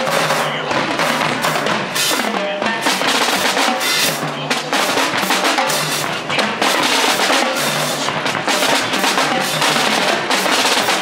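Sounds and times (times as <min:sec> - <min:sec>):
bass drums: 0:00.0 - 0:11.0
cymbals: 0:00.0 - 0:11.0
snare drums in rapid strokes: 0:00.0 - 0:11.0.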